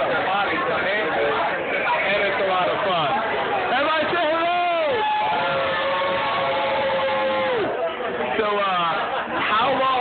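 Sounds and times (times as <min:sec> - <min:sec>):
group of people calling out: 0:04.7 - 0:07.8.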